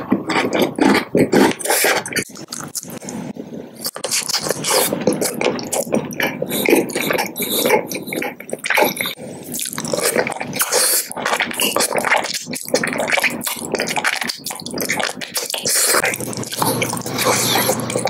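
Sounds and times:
wet sucking and lip smacking: 0:00.0 - 0:18.0.

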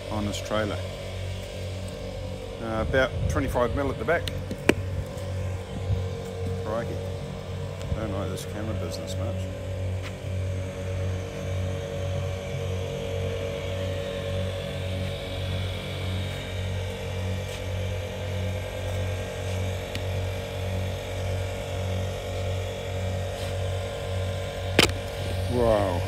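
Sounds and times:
engine running with throb: 0:00.0 - 0:26.0.

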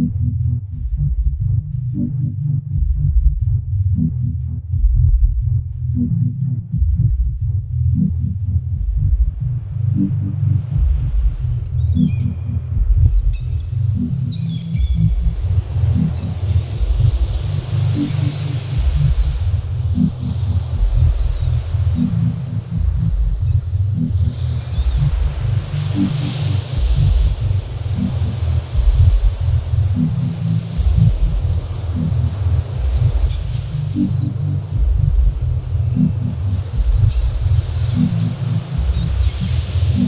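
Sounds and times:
stuttering electronic bass: 0:00.0 - 0:40.0.

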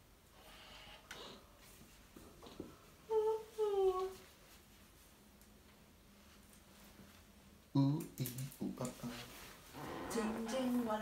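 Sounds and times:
person humming: 0:03.1 - 0:04.2.

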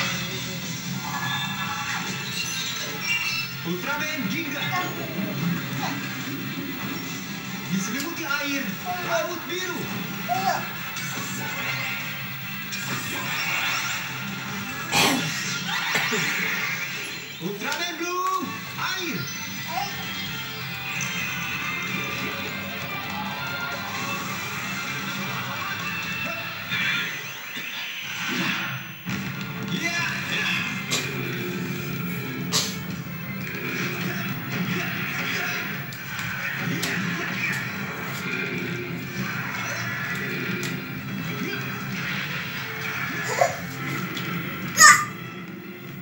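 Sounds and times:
television background music: 0:00.0 - 0:46.0.

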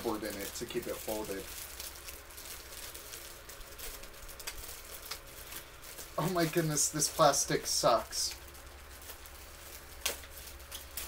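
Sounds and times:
plastic bag crinkling: 0:00.0 - 0:11.0
steady low hum: 0:00.0 - 0:11.0.

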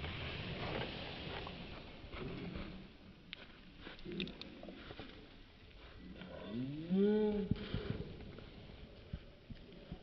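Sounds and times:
deep moo-like call: 0:06.4 - 0:07.5.

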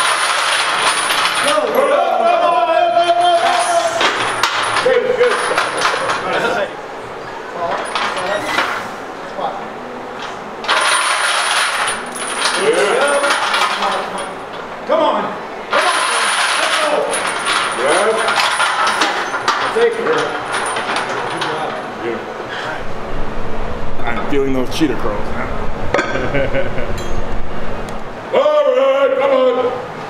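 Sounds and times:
chains and plates clanking: 0:00.0 - 0:06.8, 0:07.5 - 0:08.8, 0:10.2 - 0:14.7, 0:15.7 - 0:22.2, 0:26.9 - 0:27.4
spotters shouting: 0:00.5 - 0:06.8, 0:12.5 - 0:19.2.

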